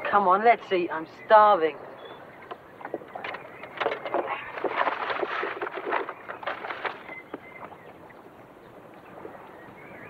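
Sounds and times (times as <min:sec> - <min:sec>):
paper bag rustling and crinkling: 0:04.2 - 0:07.2.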